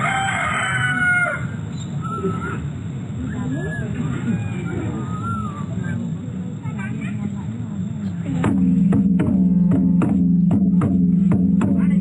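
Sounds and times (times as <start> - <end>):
low background noise: 0.0 - 12.0
bird calls: 1.5 - 6.1.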